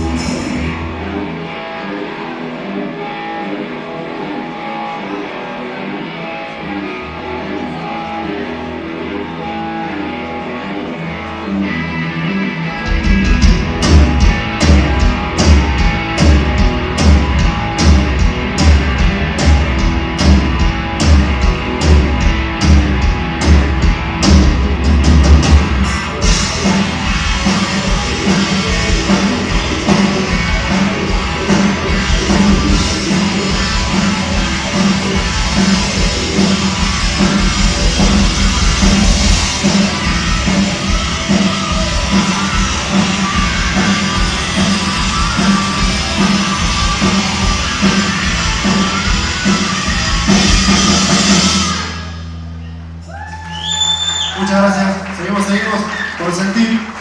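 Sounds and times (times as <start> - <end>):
rock band playing live: 0.0 - 57.0.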